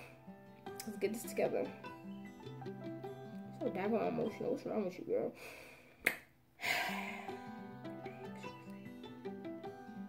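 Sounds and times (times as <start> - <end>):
plucked string background music: 0.0 - 5.3, 6.7 - 10.0
sharp snap: 6.0 - 6.3.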